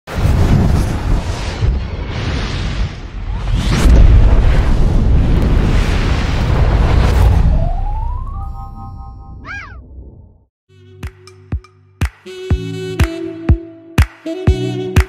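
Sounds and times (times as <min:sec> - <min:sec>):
deep booming rumble: 0:00.2 - 0:08.3
rising tone: 0:07.0 - 0:10.3.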